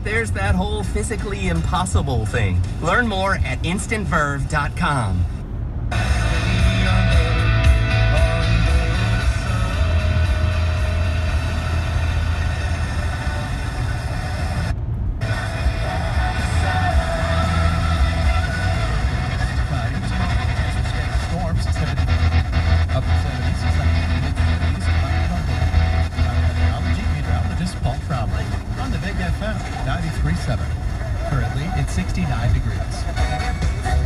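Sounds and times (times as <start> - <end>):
talk from car radio: 0.0 - 5.5, 13.2 - 34.0
low car hum: 0.0 - 34.0
music from car radio: 0.0 - 34.0.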